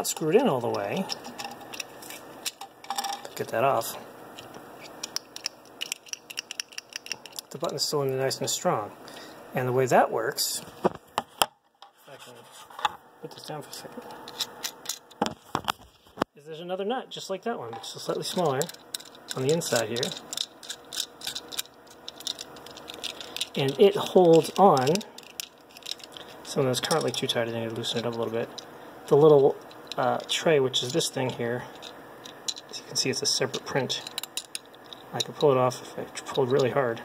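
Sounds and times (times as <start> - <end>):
plastic parts clicking in fingers: 18.4 - 26.2.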